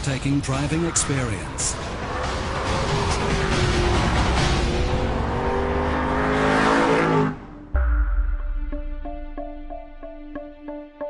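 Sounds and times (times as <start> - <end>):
tyre and road noise: 0.0 - 7.7
car engine under load: 1.7 - 7.7
music with plucked beat: 7.8 - 11.0.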